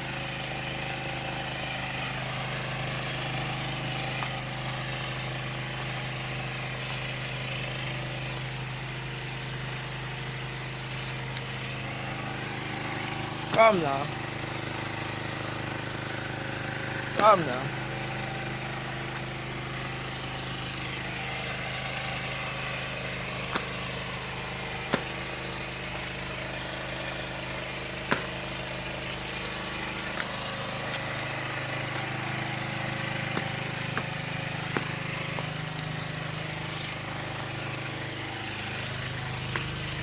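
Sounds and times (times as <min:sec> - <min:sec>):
small engine humming: 0:00.0 - 0:40.0.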